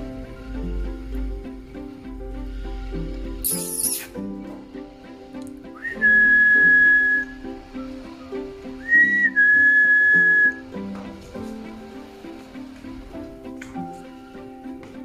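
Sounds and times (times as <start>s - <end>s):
soft background music: 0.0s - 15.0s
person whistling: 5.8s - 7.5s, 8.8s - 10.6s.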